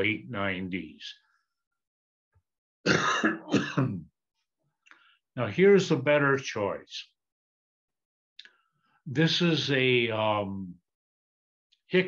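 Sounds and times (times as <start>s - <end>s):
man coughing: 2.9s - 4.0s.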